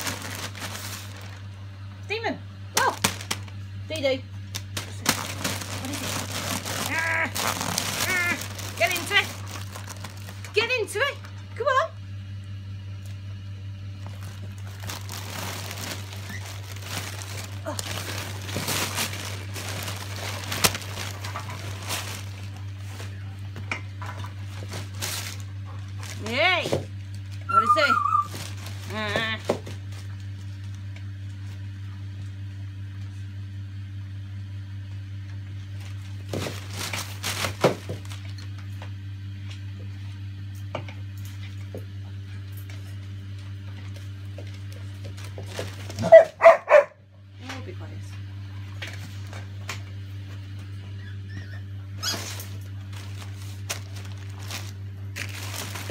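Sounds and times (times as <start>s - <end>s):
wrapping paper rustling and tearing: 0.0s - 1.5s, 2.8s - 3.6s, 4.5s - 10.6s, 14.0s - 23.3s, 24.4s - 30.9s, 35.7s - 38.6s, 43.8s - 46.6s, 52.0s - 55.9s
steady low hum: 0.0s - 55.9s.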